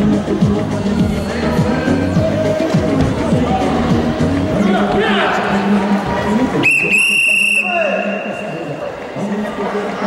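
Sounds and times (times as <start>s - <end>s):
hall chatter: 0.0s - 10.0s
whistle blast: 6.6s - 8.6s.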